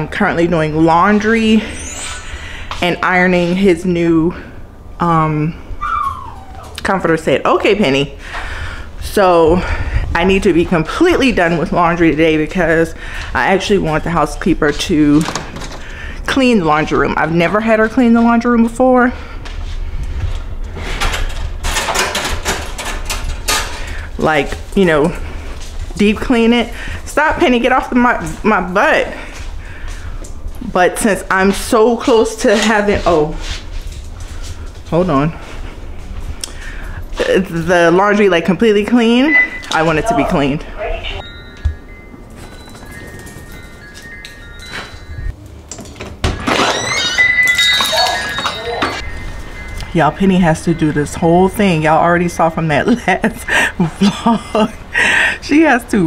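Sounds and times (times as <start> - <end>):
steady low hum: 0.0 - 21.8, 49.0 - 56.0
sliding door rumbling and squeaking: 0.8 - 2.7, 20.5 - 23.8, 46.2 - 52.0
rustling and shuffling: 17.7 - 38.1, 39.8 - 46.1.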